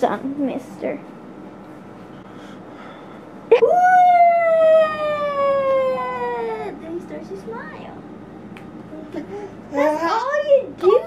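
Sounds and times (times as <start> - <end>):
person calling woooo: 3.5 - 6.7.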